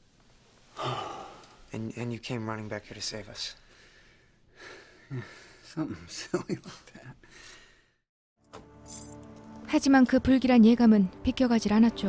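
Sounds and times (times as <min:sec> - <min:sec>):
person sighing: 0:00.7 - 0:01.6.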